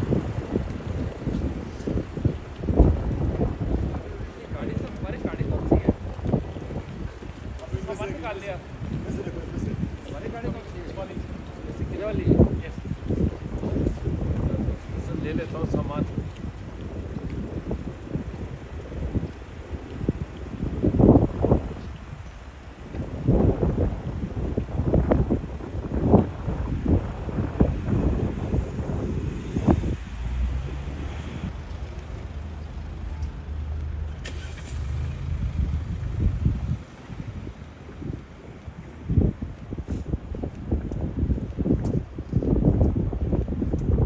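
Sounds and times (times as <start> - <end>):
city street traffic: 0.0 - 44.0
wind buffeting microphone: 0.0 - 44.0
vehicle engine hum: 29.8 - 37.9.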